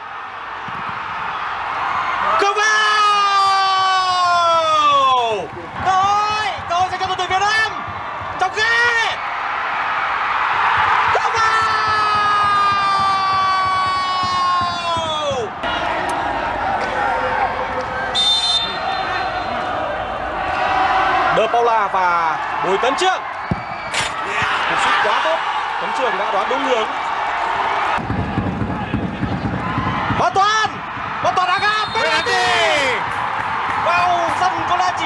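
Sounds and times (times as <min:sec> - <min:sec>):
commentator shouting excitedly: 0:30.2 - 0:33.0.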